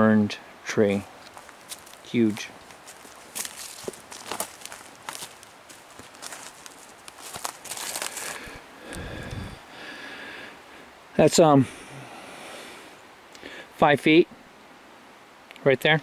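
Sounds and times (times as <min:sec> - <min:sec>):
footsteps on dry leaves and twigs: 0:01.0 - 0:09.6.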